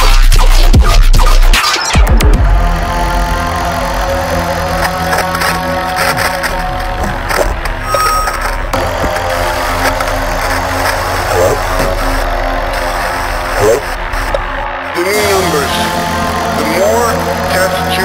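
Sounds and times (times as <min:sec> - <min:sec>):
low bass drone: 0:00.0 - 0:18.0
held synth tones: 0:02.6 - 0:18.0.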